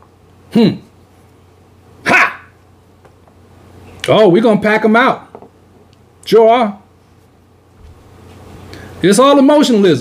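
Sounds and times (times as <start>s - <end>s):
man shouting: 2.0s - 2.6s.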